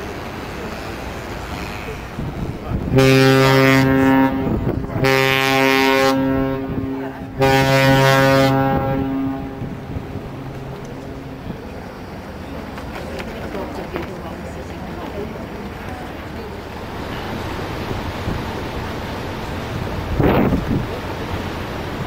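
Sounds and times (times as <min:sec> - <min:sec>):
ship's horn blasts: 0:00.6 - 0:12.0
wind noise on microphone: 0:02.1 - 0:03.2, 0:04.0 - 0:11.7, 0:19.7 - 0:21.1.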